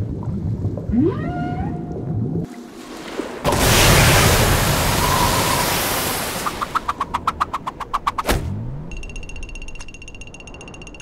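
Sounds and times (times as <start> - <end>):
steady high ringing tone: 8.8 - 11.0
rapid ticks: 8.9 - 11.0.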